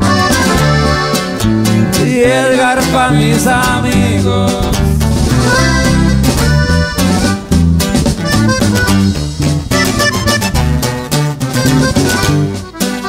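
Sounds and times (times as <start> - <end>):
accordion melody: 0.0 - 13.0
bass line: 0.0 - 13.0
strummed guitar: 0.0 - 13.0.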